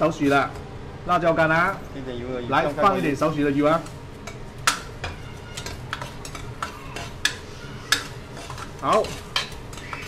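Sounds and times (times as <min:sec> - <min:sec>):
metal spatula scraping a wok: 0:04.2 - 0:10.0.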